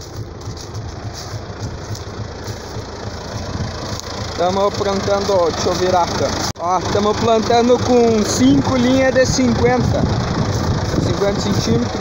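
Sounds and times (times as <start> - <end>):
tractor engine droning: 0.0 - 12.0.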